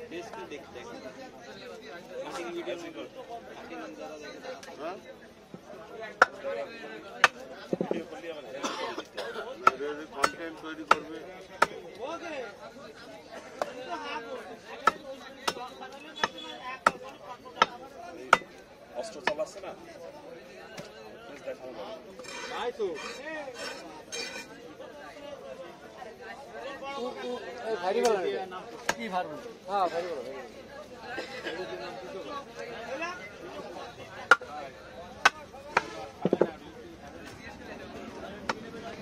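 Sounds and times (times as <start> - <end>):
people chattering: 0.0 - 39.0
cleaver chopping fish on wood: 9.6 - 11.8, 14.8 - 18.5.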